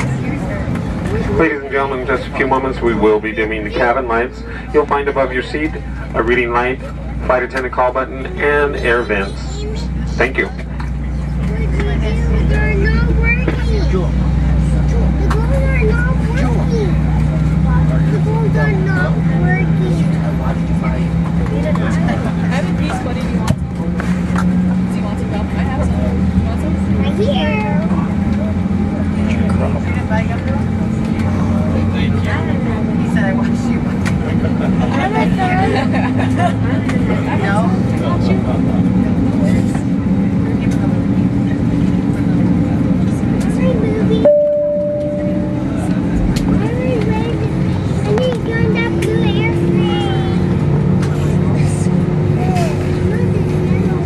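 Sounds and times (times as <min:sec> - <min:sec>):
deep rumble: 0:00.0 - 0:54.0
jet engine cabin hum: 0:00.0 - 0:54.0.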